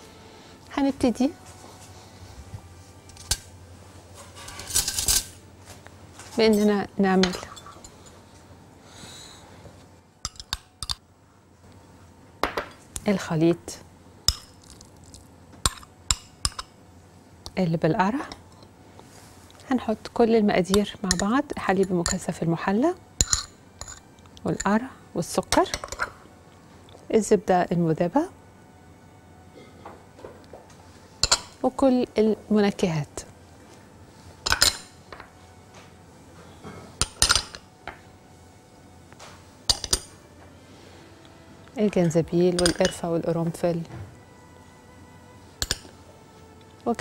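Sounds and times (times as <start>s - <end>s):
metal spoon clinking on glass bowl: 10.2s - 11.0s, 20.7s - 22.3s, 23.2s - 24.8s, 31.2s - 31.6s, 39.7s - 40.1s, 42.0s - 43.0s, 45.6s - 45.9s
spoon clinking glass bowls: 10.3s - 11.0s, 31.2s - 31.6s, 34.4s - 34.9s, 37.0s - 37.6s, 39.7s - 40.1s, 42.0s - 43.0s, 45.6s - 45.9s.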